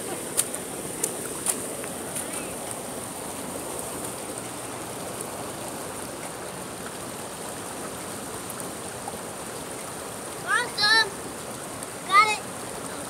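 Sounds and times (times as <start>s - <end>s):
stream water running over rocks: 0.0s - 13.0s.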